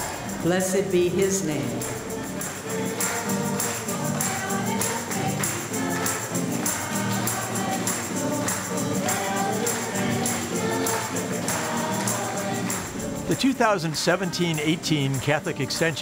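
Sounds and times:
choir singing a hymn: 0:00.0 - 0:16.0
tambourine beat: 0:00.0 - 0:16.0.

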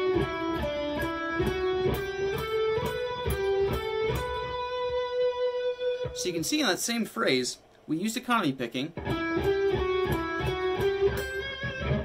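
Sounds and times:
electric guitar single-note lick: 0:00.0 - 0:06.2, 0:09.0 - 0:12.0.

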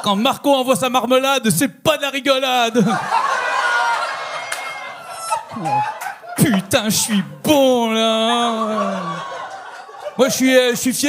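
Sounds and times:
audience laughter: 0:02.7 - 0:10.9.

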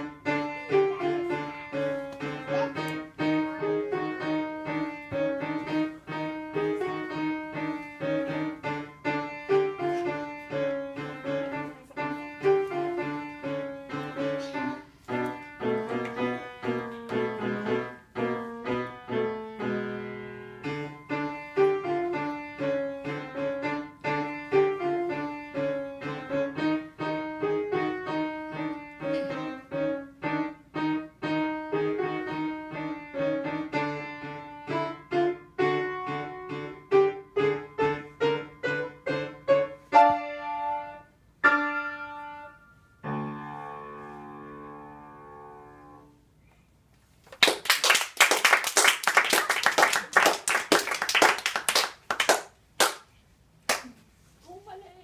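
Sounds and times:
upright piano playing: 0:00.0 - 0:46.2
people clapping: 0:47.3 - 0:53.1, 0:53.7 - 0:54.0.

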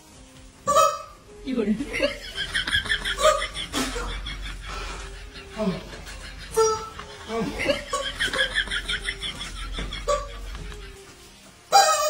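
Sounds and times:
high-pitched laughter: 0:01.8 - 0:11.0.

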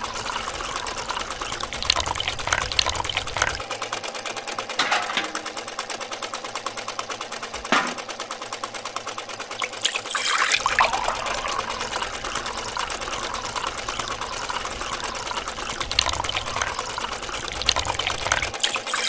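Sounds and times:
juice splashing into metal bucket: 0:00.0 - 0:03.6, 0:09.6 - 0:19.0
small grinder motor rattling: 0:00.0 - 0:19.0.

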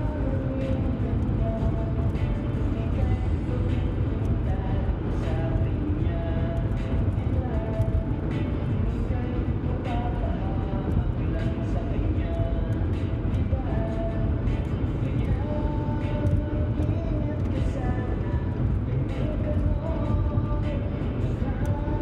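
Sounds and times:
car road and engine rumble: 0:00.0 - 0:22.0
music playing: 0:00.0 - 0:22.0.

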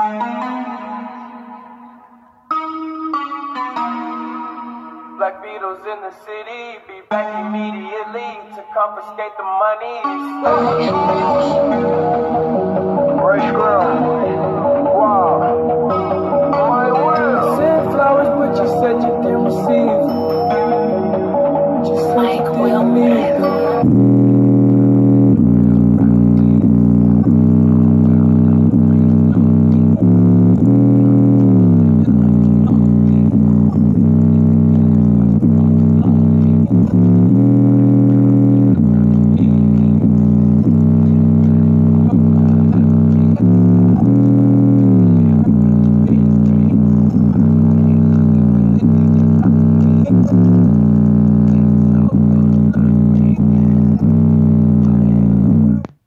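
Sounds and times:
bass-heavy music through speaker: 0:00.0 - 0:56.0
deep sliding bass notes: 0:22.8 - 0:55.9.

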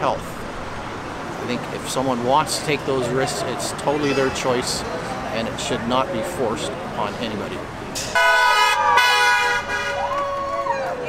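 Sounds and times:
car horn honking: 0:08.1 - 0:10.1.

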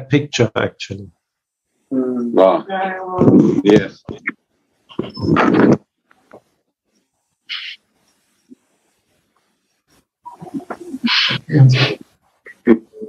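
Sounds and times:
person's voice burst: 0:00.0 - 0:01.0, 0:10.3 - 0:13.0.

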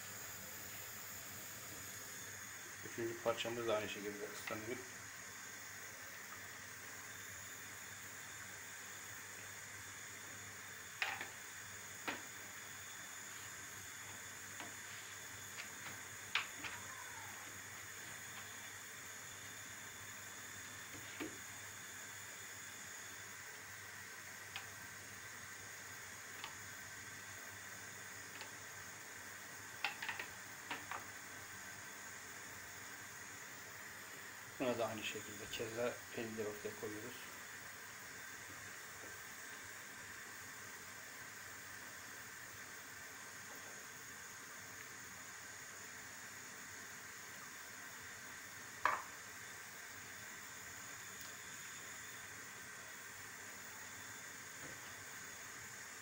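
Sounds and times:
faint steady hiss: 0:00.0 - 0:56.0.

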